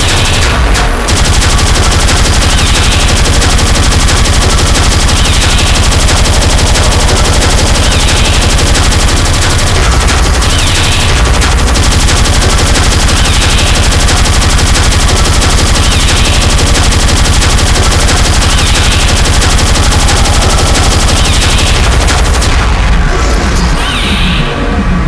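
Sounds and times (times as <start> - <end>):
fast distorted kick drum: 0.0 - 23.0.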